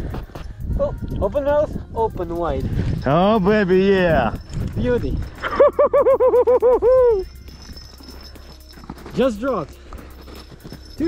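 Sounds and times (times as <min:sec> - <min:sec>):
man laughing: 0:05.4 - 0:07.2.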